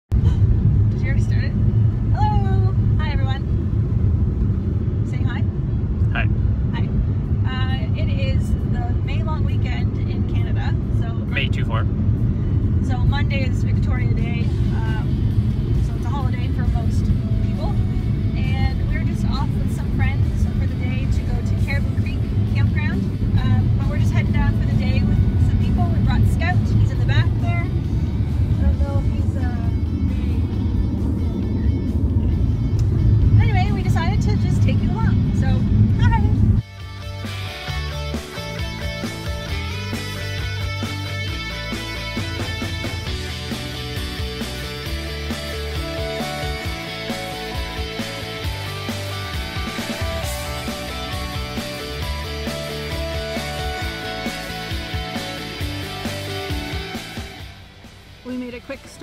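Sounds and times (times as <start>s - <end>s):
car road rumble: 0.0s - 59.0s
music: 6.8s - 59.0s.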